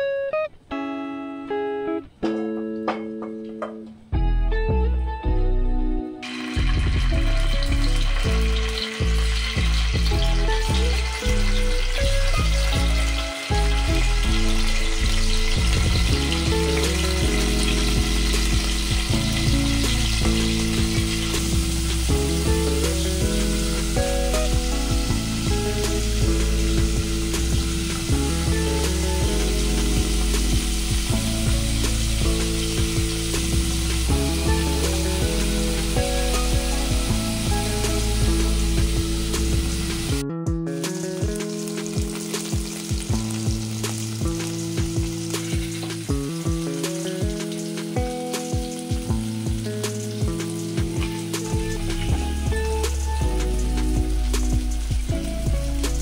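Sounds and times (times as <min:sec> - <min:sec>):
background music: 0:00.0 - 0:56.0
cheese sizzling in oil: 0:06.2 - 0:40.2, 0:40.8 - 0:56.0.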